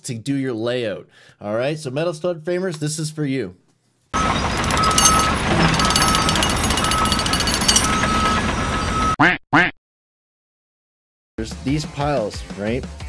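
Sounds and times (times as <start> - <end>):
loud rattling din: 4.2 - 8.5.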